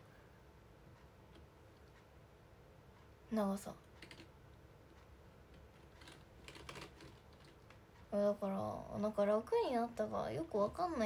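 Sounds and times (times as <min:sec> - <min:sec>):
faint typing clicks: 0:02.9 - 0:08.2.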